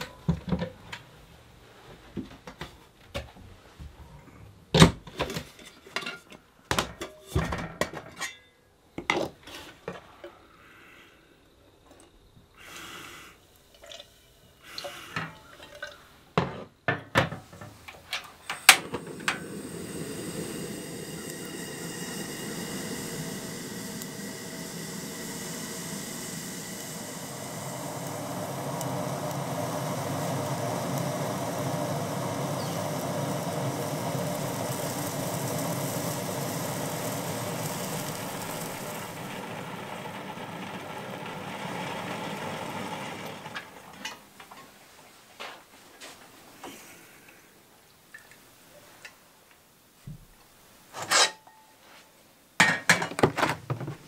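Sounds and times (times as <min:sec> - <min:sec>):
gas stove burner hissing: 0:00.0 - 0:01.8, 0:09.5 - 0:16.6, 0:17.2 - 0:45.0
metal kettle clanking: 0:18.1 - 0:19.5.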